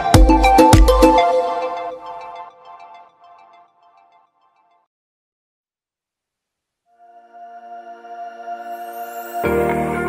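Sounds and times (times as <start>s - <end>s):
electronic music with deep bass: 0.0s - 2.3s.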